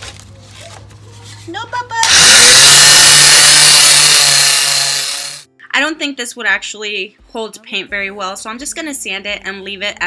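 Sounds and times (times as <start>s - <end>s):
sander motor hum: 2.0s - 5.4s.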